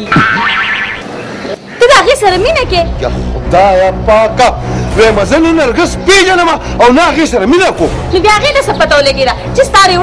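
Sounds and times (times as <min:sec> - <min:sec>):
falling boing twang: 0:00.1 - 0:01.0.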